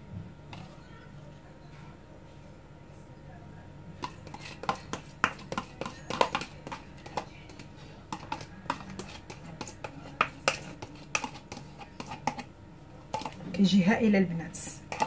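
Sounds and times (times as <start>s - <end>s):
utensil tapping container and dish: 4.0s - 12.4s.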